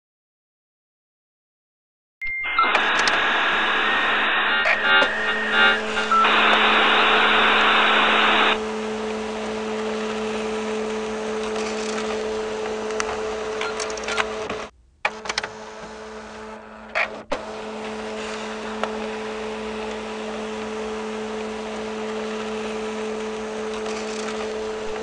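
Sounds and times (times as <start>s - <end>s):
dial-up modem tones: 2.2s - 8.6s
steady low hum: 2.4s - 15.0s.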